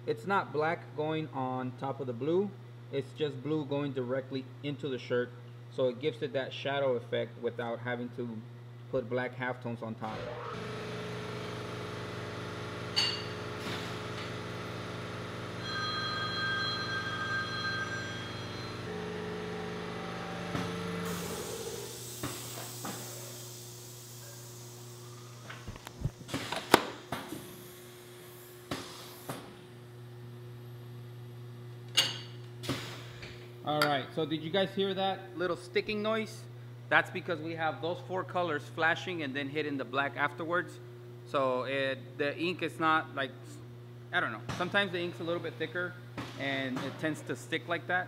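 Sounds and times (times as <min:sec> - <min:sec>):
hiss: 0:21.0 - 0:24.8.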